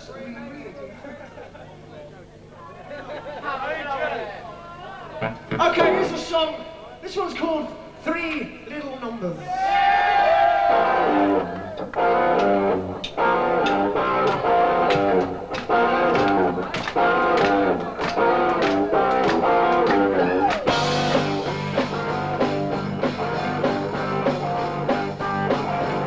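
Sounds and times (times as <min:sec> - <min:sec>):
rock band playing live: 0:10.7 - 0:26.0
electric guitar picking notes: 0:10.8 - 0:26.0.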